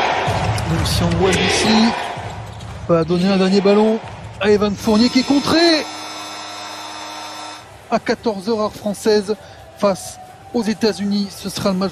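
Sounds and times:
game clock horn buzzing: 4.9 - 7.8.

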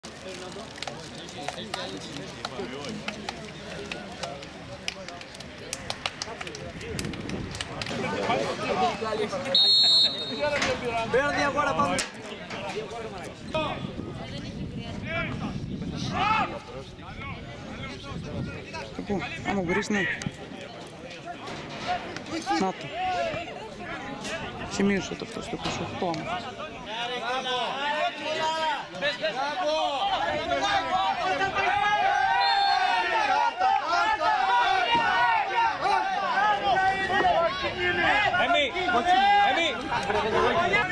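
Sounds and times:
voices of players and people: 0.0 - 40.9
referee's whistle blast: 9.2 - 10.6, 32.4 - 33.0
players and onlookers shouting: 26.3 - 40.9.

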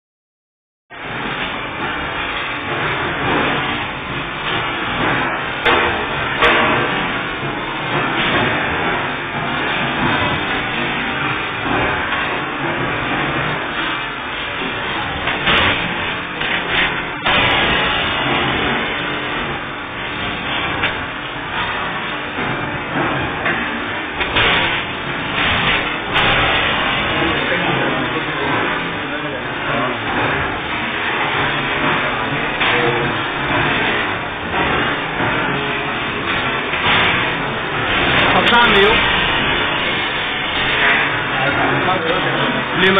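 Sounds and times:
hydraulic press running: 0.9 - 42.9.

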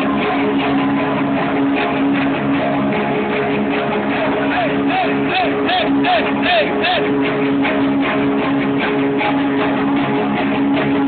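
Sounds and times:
electric guitar chords: 0.0 - 11.0.

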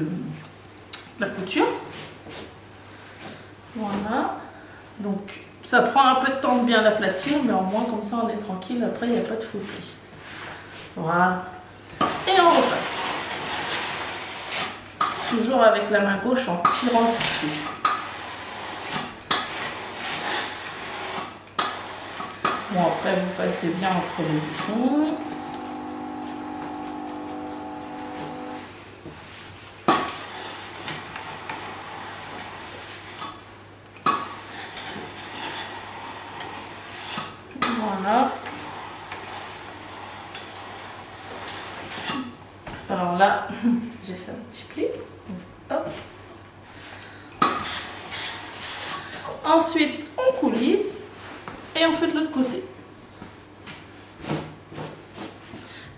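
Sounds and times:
steam iron hissing: 12.2 - 15.3, 16.9 - 28.7, 30.0 - 33.2.

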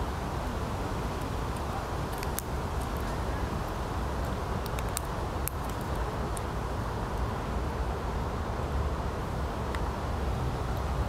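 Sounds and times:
squirrel cracking nut shells: 1.6 - 3.1, 4.2 - 6.5.

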